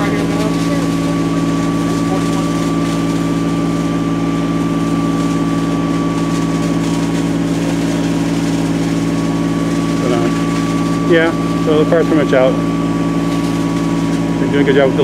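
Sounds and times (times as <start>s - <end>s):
fire engine pump running: 0.0s - 15.0s.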